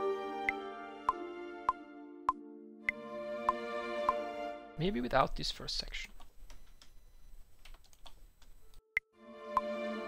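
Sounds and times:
sustained orchestral chords: 0.0 - 4.8, 9.2 - 10.0
computer keyboard and mouse clicks: 7.6 - 8.8.

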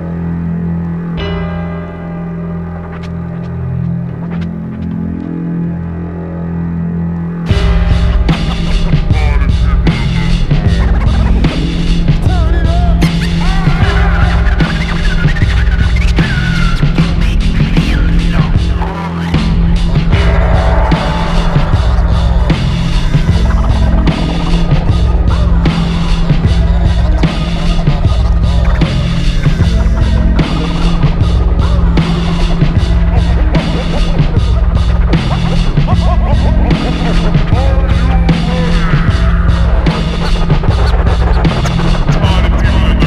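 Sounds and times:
low bass drone: 0.0 - 43.0
turntable scratching: 2.8 - 5.3, 7.5 - 43.0
hip-hop beat: 7.5 - 43.0.

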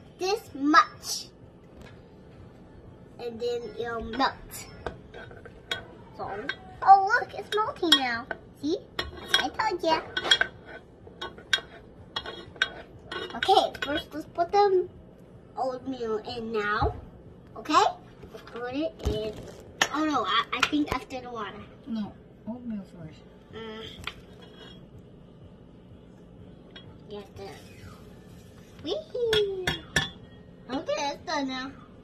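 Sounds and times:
spoon and dishes clinking: 4.1 - 6.8, 7.4 - 14.1, 26.6 - 28.0, 29.3 - 30.5.

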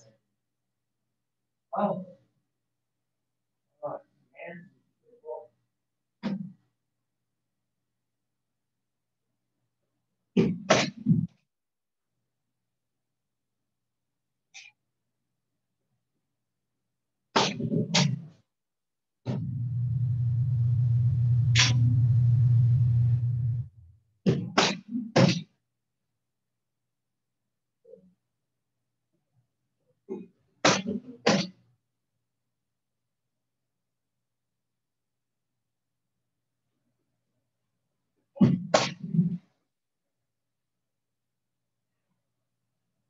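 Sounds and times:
low hum: 19.3 - 24.1.

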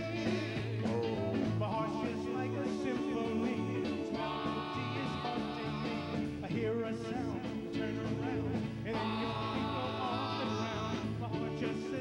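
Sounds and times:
rock and roll band playing: 0.0 - 12.0
vocal group singing in harmony: 0.0 - 12.0.

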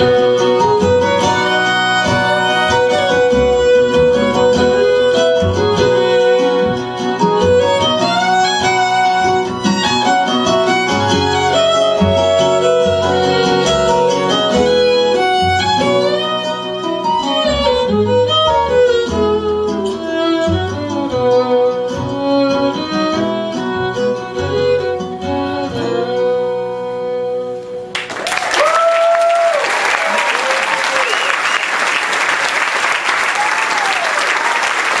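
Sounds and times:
fiddle: 0.0 - 27.9
cello: 0.0 - 28.0
acoustic guitar: 0.0 - 28.2
audience applause: 27.9 - 35.0
audience whoops: 28.0 - 35.0.

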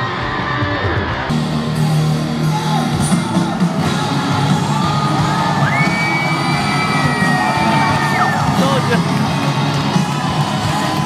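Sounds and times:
crowd whooping and yelling: 0.0 - 11.0
loud rock music: 0.0 - 11.0.

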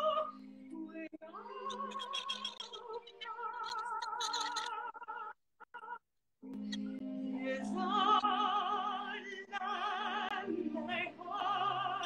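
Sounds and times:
operatic soprano singing: 0.0 - 6.0, 6.6 - 12.0.

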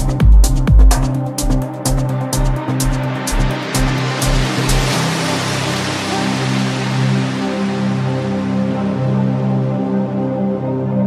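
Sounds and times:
held synth bass and pads: 0.0 - 11.0.

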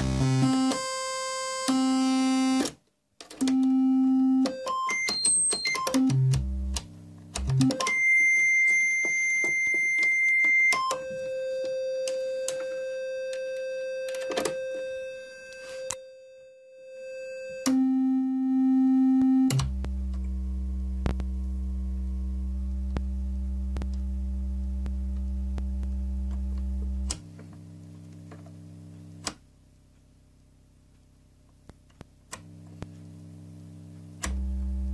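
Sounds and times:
synthesizer held tones: 7.4 - 28.1
clicks: 19.2 - 20.4, 34.1 - 34.5.

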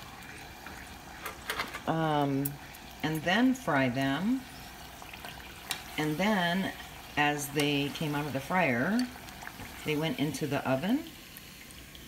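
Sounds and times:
oil crackles: 0.0 - 12.0
tortilla sizzling in hot oil: 0.0 - 12.0.

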